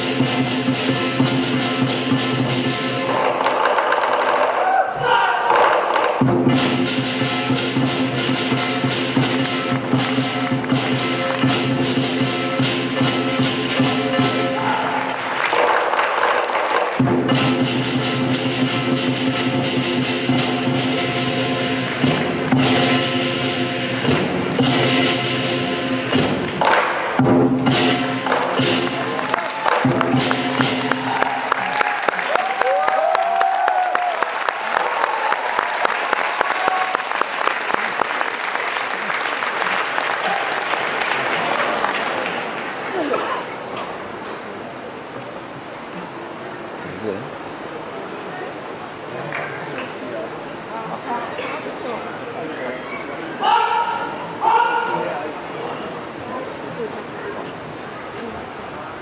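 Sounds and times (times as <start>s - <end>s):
rapid percussion strikes: 0.0s - 33.1s
audience shouts: 4.4s - 6.0s, 14.5s - 15.7s, 29.0s - 38.0s, 39.2s - 42.2s, 53.4s - 55.2s
audience applause: 14.5s - 17.1s, 28.2s - 43.7s.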